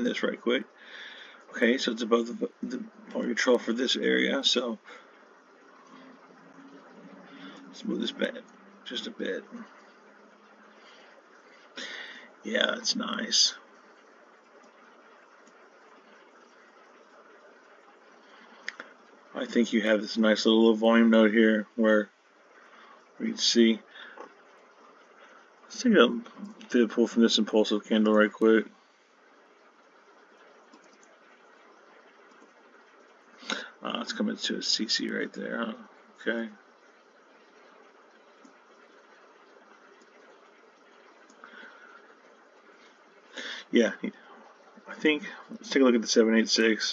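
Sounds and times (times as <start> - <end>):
man speaking: 0.0 - 0.7, 1.5 - 5.0, 7.7 - 9.7, 12.4 - 13.6, 19.4 - 22.1, 23.2 - 23.9, 25.7 - 28.7, 33.5 - 36.6, 43.5 - 44.3, 44.9 - 46.9
faint room hiss: 0.0 - 46.9.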